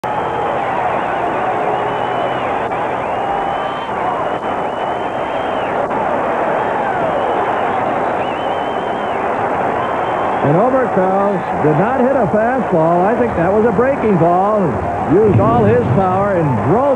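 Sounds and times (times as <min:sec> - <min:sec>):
stadium crowd cheering: 0:00.0 - 0:16.9
shrill gliding whistles: 0:01.0 - 0:05.8, 0:07.1 - 0:09.2.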